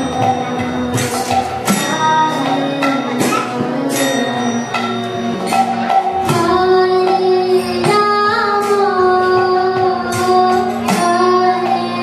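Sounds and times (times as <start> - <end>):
small hand cymbals striking: 0.0 - 12.0.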